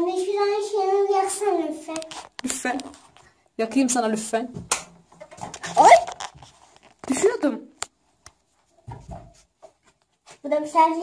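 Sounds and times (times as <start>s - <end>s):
soft rustle: 8.0s - 11.0s.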